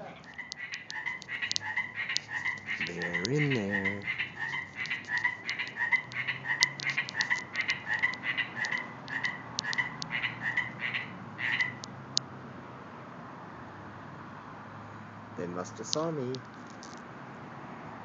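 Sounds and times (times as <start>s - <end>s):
frogs croaking rapidly: 0.0s - 12.3s, 15.3s - 17.0s.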